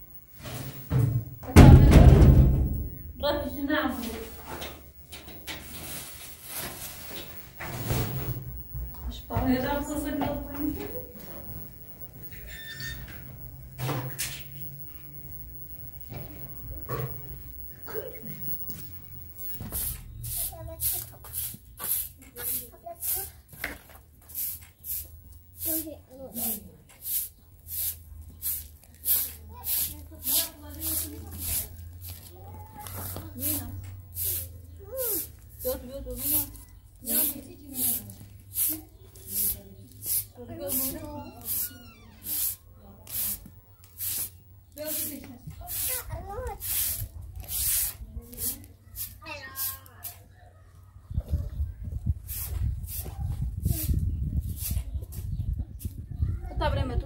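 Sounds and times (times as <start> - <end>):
broom sweeping a tiled floor: 0.3 - 1.0, 5.4 - 8.4, 18.0 - 50.3, 52.2 - 56.0
voices: 1.4 - 57.0.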